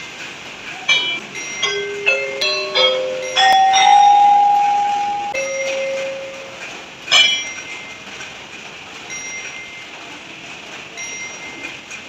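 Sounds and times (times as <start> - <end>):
wooden xylophone notes: 0.8 - 8.0.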